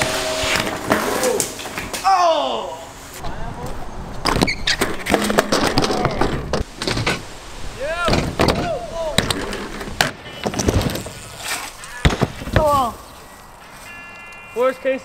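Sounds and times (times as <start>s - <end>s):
bikes knocking and rattling on ramps: 3.6s - 7.2s, 8.1s - 12.9s
short squeaks: 4.4s - 4.8s.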